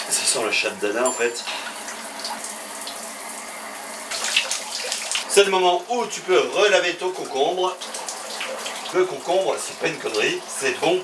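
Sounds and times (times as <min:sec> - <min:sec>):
shower water running into bathtub: 0:00.0 - 0:11.0.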